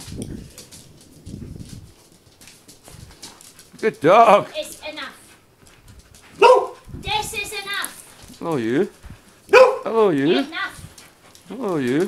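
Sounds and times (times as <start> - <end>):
low muffled rumbles: 0.0 - 3.4
dogs moving on a hard floor: 0.0 - 12.0
woman speaking: 4.5 - 5.3, 7.0 - 8.1, 10.2 - 10.9.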